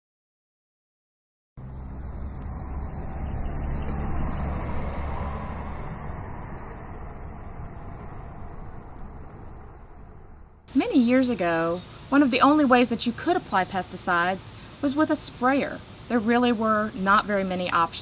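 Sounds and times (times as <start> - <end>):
vehicle engine passing by: 1.6 - 10.8.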